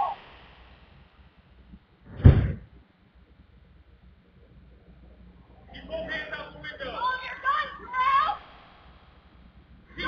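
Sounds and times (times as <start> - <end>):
faint steady background hiss: 0.0 - 10.0
person shouting: 6.9 - 8.4.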